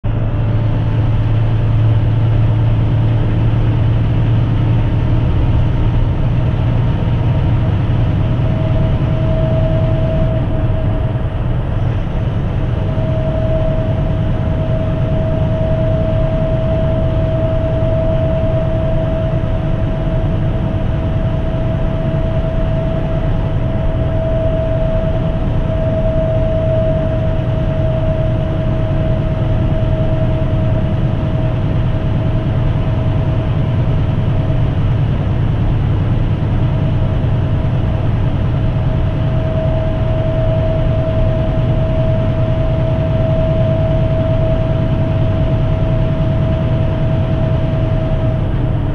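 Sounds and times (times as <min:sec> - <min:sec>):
diesel engine drone: 0:00.0 - 0:48.9
faint constant whine: 0:00.1 - 0:48.9.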